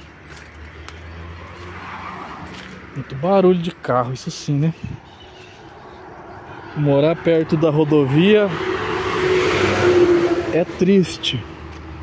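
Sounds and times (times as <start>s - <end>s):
passing vehicle tyre noise: 0.0s - 4.0s, 5.6s - 12.0s
highway traffic rumble: 0.0s - 12.0s.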